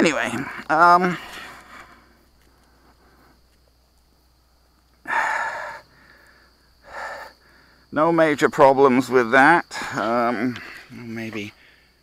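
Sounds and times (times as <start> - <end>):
person breathing out heavily: 5.0 - 7.9.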